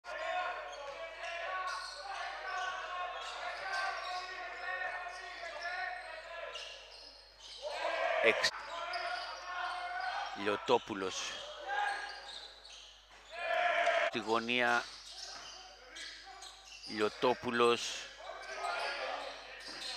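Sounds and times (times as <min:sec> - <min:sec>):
voices echoing in a hall: 0:00.0 - 0:19.9.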